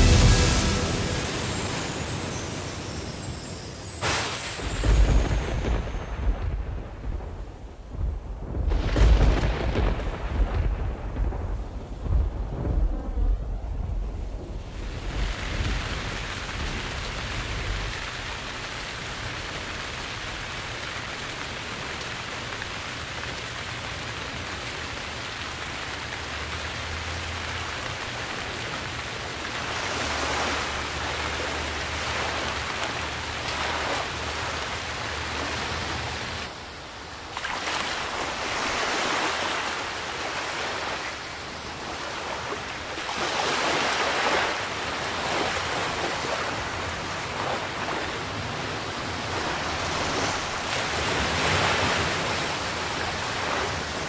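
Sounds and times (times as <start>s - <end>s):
rain hissing: 0.0s - 6.8s, 14.6s - 36.7s
waves washing in: 0.0s - 12.8s, 14.5s - 54.0s
thunder rumbling: 4.6s - 18.0s.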